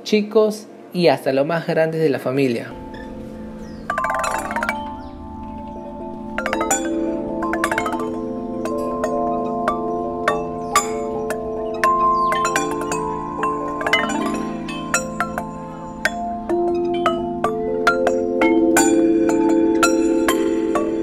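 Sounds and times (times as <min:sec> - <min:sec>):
metal chime tubes struck: 0:02.7 - 0:21.0.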